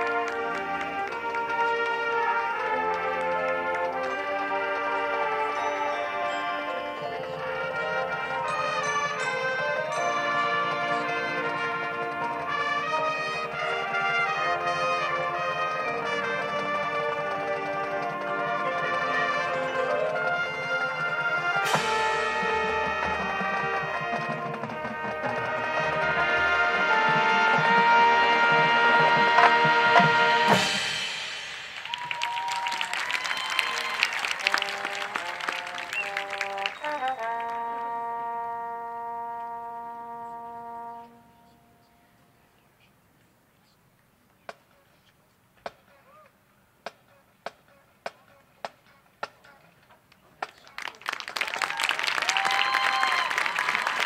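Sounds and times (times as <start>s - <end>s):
marching band brass and percussion: 0.0s - 41.9s, 46.9s - 54.0s.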